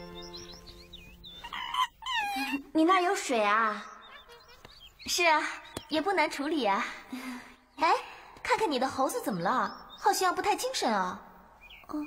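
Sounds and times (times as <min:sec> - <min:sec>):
monkey squeaking and squealing: 0:01.3 - 0:02.7, 0:03.9 - 0:05.0.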